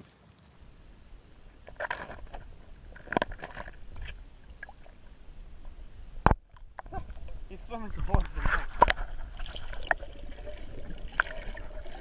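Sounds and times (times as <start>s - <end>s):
muffled underwater movement: 0.0s - 12.0s.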